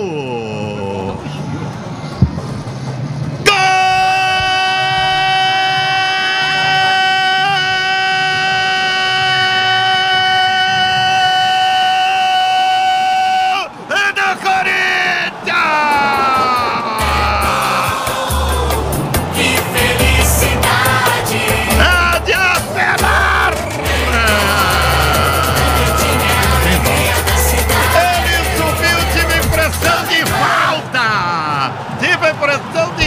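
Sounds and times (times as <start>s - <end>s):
man shouting goal call: 3.4s - 18.0s, 21.8s - 30.2s.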